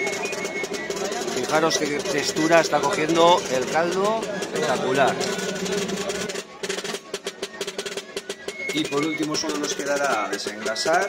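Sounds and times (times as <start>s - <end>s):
quick percussion strikes: 0.0s - 11.0s.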